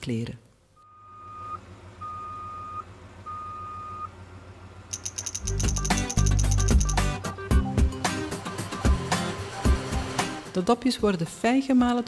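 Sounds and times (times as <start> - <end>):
truck reversing beeper: 0.8 - 6.5
ratcheting clatter of gears: 4.9 - 7.0.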